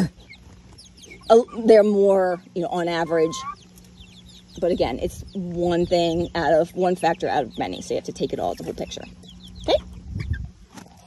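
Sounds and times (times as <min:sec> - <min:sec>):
chicks peeping: 0:00.0 - 0:11.0.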